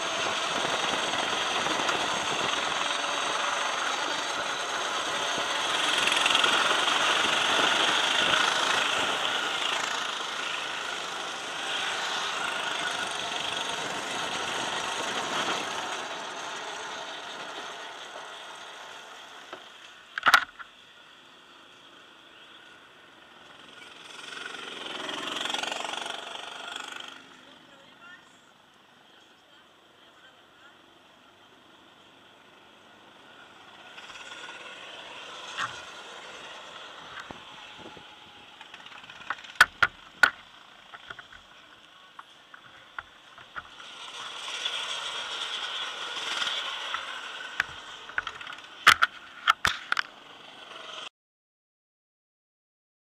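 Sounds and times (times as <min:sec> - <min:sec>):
go-kart engine: 0:00.0 - 0:51.1
low steady background noise: 0:00.0 - 0:51.1.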